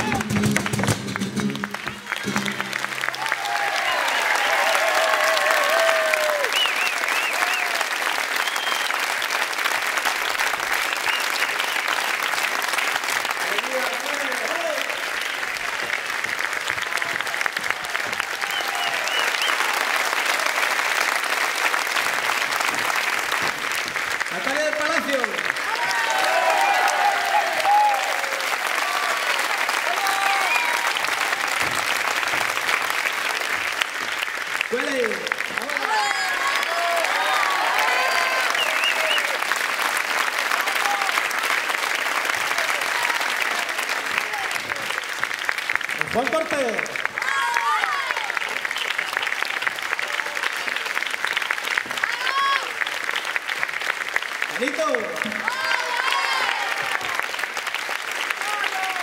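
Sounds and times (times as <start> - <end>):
people calling out and cheering: 0.0 - 7.8, 24.5 - 31.4, 34.7 - 39.4, 47.2 - 48.5, 52.0 - 52.8, 54.6 - 57.3
audience applauding: 0.0 - 59.0.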